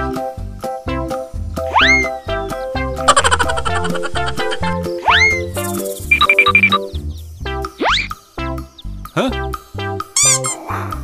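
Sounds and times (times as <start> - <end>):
playful background music: 0.0 - 11.0.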